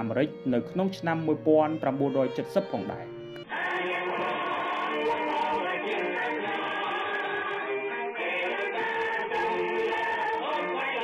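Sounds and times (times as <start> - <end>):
choir singing held notes: 3.4 - 11.0.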